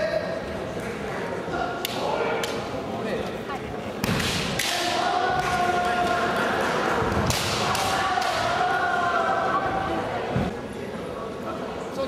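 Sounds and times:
long held shout: 0:07.6 - 0:10.1.

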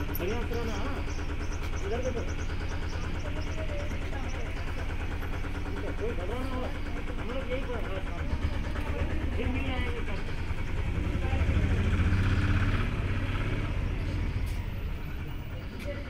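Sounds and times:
people talking: 0:01.8 - 0:12.1, 0:15.1 - 0:16.0.

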